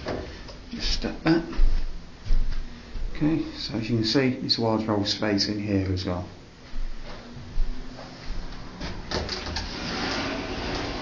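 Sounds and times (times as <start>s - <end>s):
wardrobe door scraping: 8.8s - 11.0s.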